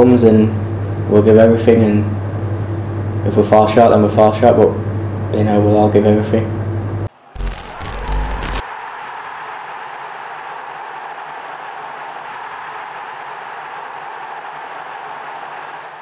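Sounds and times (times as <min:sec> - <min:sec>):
steady noise bed: 0:06.8 - 0:08.6
digital glitch: 0:07.4 - 0:08.6.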